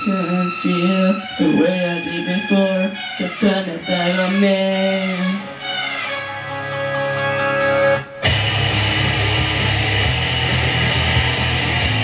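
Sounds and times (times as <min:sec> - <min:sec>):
electric guitar rock riff: 0:05.4 - 0:12.0.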